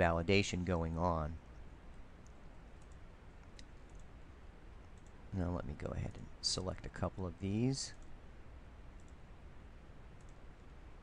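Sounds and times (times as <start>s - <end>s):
low steady background hiss: 0.0s - 11.0s
faint computer mouse clicks: 4.9s - 5.2s, 9.0s - 9.2s, 10.2s - 10.4s.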